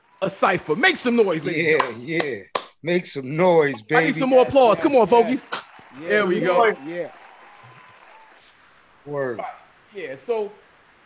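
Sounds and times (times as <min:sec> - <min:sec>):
applause: 0:00.0 - 0:02.7, 0:04.0 - 0:08.6.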